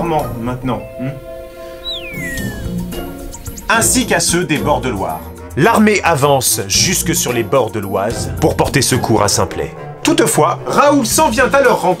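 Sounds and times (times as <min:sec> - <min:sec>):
background music with held notes: 0:00.0 - 0:12.0
high falling tone: 0:01.4 - 0:03.9.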